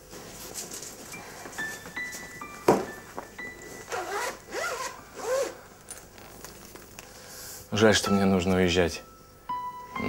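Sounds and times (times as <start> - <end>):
zipper being pulled shut: 3.9 - 5.6.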